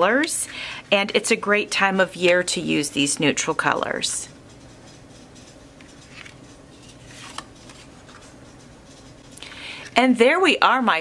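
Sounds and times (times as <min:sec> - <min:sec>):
index cards rustling: 0:05.8 - 0:09.0.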